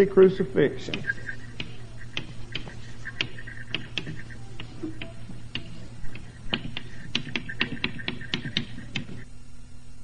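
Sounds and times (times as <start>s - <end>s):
chalk tapping on blackboard: 0.8s - 9.2s
chalk squeak: 0.9s - 9.2s.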